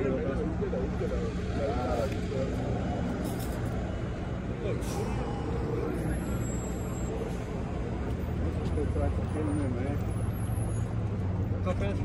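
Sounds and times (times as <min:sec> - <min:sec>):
quiet voices talking: 0:00.0 - 0:12.0.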